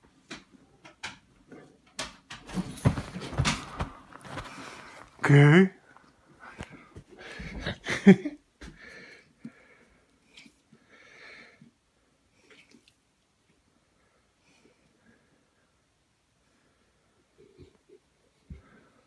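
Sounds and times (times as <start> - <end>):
person laughing: 7.4 - 8.4.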